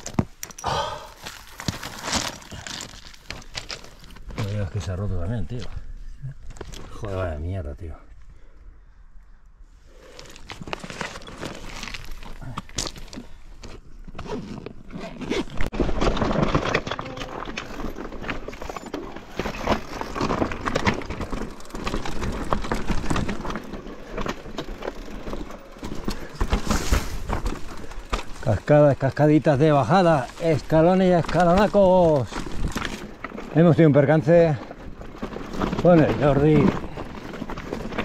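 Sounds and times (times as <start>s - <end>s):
bike tyres clattering over rocks: 0.0s - 5.0s, 10.1s - 13.8s, 15.7s - 38.0s
bike chain and frame rattling: 15.9s - 38.0s.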